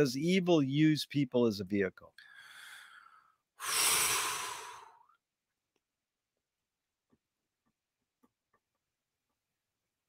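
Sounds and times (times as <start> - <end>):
person sighing deeply: 3.6 - 5.1.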